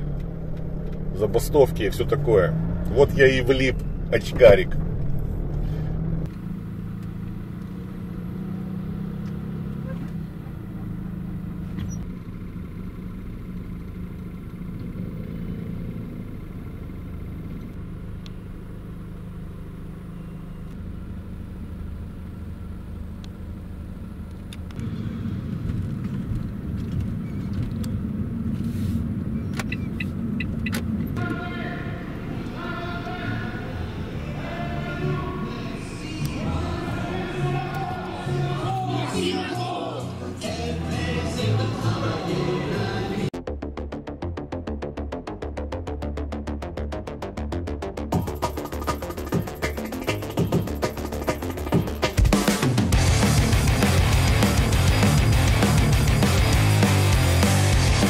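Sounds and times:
van engine low rumble: 0.0s - 58.0s
voices: 31.2s - 43.3s.

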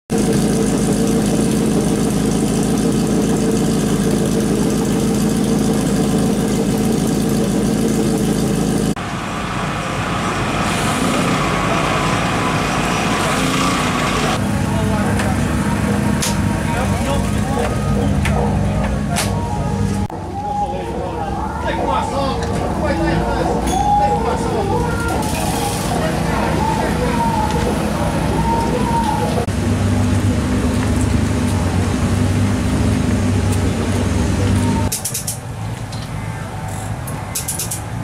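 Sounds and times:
race car engines idling: 0.1s - 38.0s
sharp clicks: 36.7s - 37.9s.

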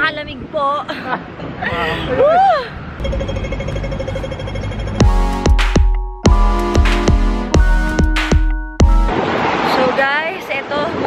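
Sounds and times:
crossing signal ticking fast: 3.0s - 9.1s.

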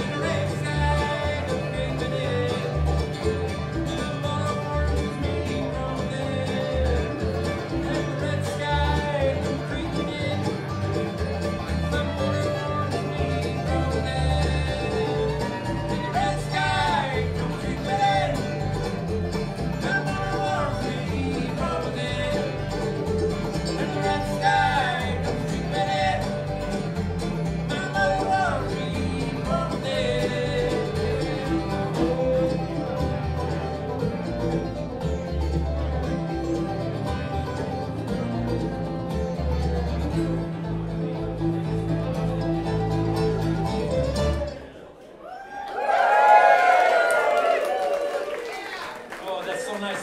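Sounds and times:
bluegrass band playing: 0.0s - 45.2s
loud voices: 0.0s - 50.0s.

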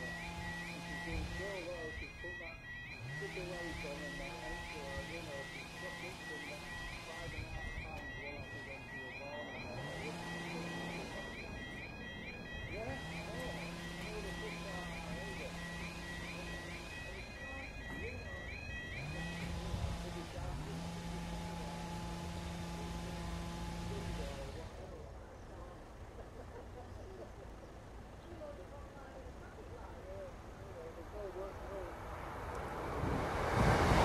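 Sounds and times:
level crossing alarm warbling: 0.0s - 32.1s.

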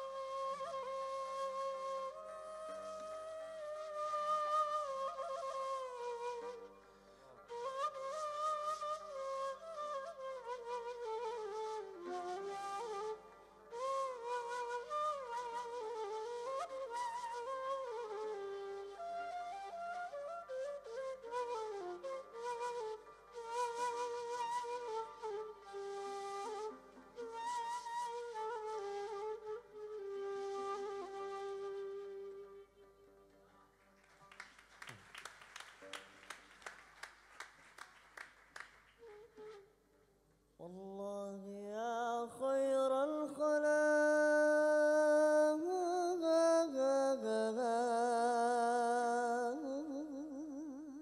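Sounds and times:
reed flute melody: 0.0s - 33.7s, 35.2s - 40.9s, 42.9s - 51.0s.

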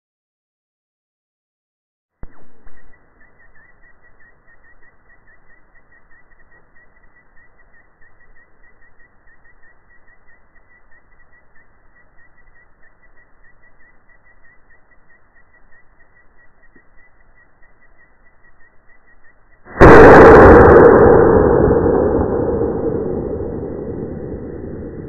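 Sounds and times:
faint repeating chirp: 2.2s - 25.0s
outdoor background hiss: 2.3s - 20.0s.

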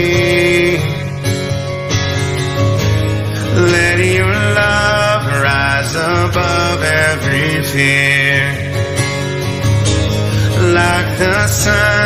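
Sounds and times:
acoustic guitar: 0.0s - 12.0s
person singing worship song: 10.4s - 12.0s.

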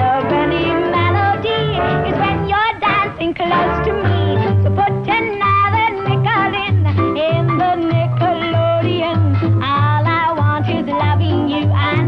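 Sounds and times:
small band playing: 0.0s - 12.0s
woman singing pop song: 0.0s - 12.0s.

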